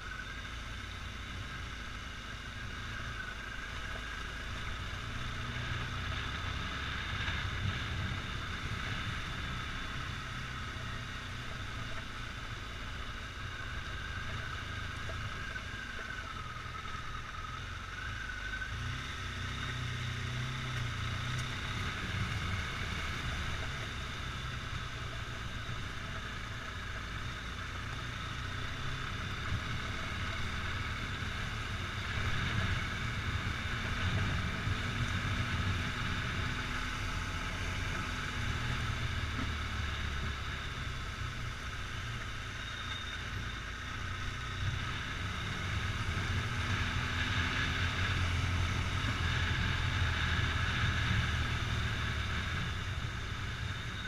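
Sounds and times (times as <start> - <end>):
motorcycle engine running: 0.0 - 54.0.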